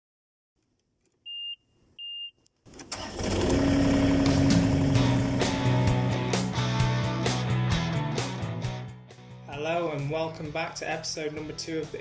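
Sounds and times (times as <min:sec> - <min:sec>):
short high beeps: 0:01.3 - 0:02.4
engine starting and running: 0:02.7 - 0:06.6
rock music: 0:04.3 - 0:12.0.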